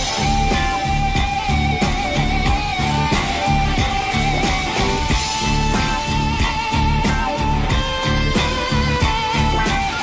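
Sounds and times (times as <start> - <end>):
bass and drum beat: 0.0 - 10.0
electric guitar long high note: 0.0 - 10.0.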